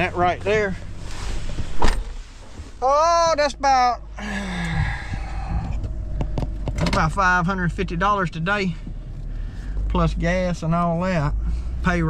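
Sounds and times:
rustling in a seat: 0.0s - 3.0s
car door slamming shut: 1.7s - 2.2s.

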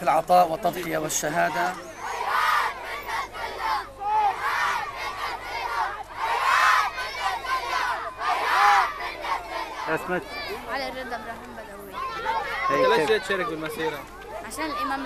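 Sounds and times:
children shouting slogans in unison: 1.3s - 10.7s, 12.0s - 13.9s.

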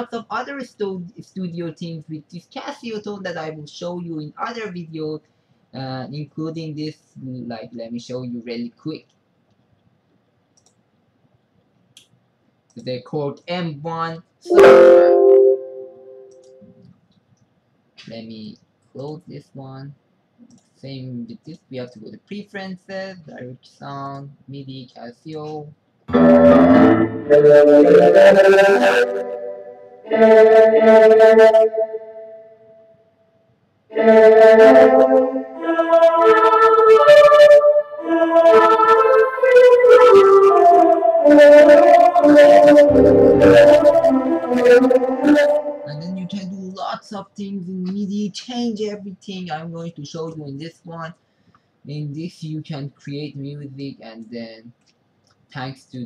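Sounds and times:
synthesizer chords: 14.5s - 16.8s, 26.1s - 32.7s, 33.9s - 46.8s.

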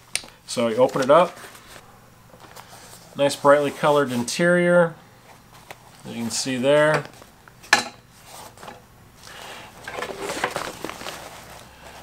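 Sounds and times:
nylon fabric rustling: 9.8s - 12.0s.

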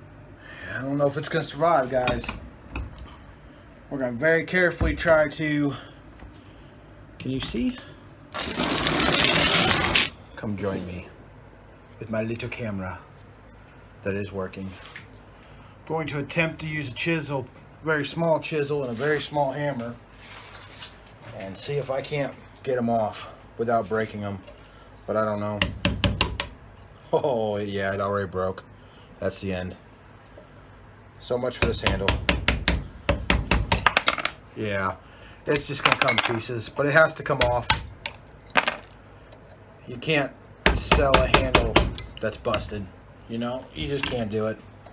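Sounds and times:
impact driver hammering: 31.6s - 34.0s, 40.7s - 42.1s.

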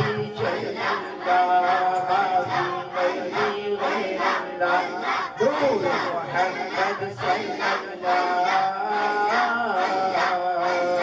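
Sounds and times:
crowd chanting in rhythm: 0.0s - 11.0s
man's voice over a microphone: 5.4s - 6.4s.

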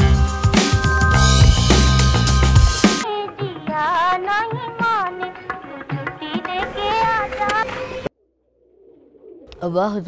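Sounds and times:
song playing: 0.0s - 7.0s
pigeons cooing: 8.6s - 9.7s.

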